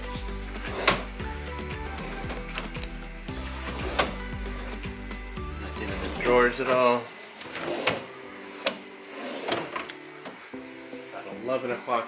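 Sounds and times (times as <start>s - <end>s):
background music with held tones: 0.0s - 12.0s.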